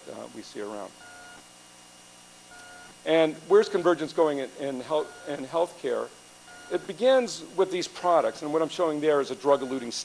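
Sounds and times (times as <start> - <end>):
steady low hum: 0.0 - 10.0
faint electronic beeps: 1.0 - 1.4, 2.5 - 3.0, 4.9 - 5.5, 6.5 - 7.0, 9.5 - 10.0.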